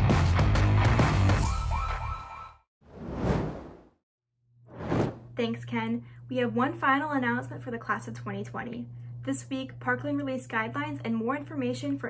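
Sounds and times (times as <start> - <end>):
whoosh sound effect: 2.9 - 3.9, 4.7 - 5.2.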